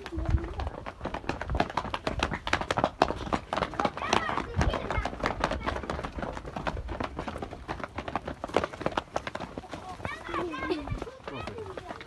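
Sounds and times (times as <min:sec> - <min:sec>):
footsteps on dirt path: 0:00.0 - 0:12.0.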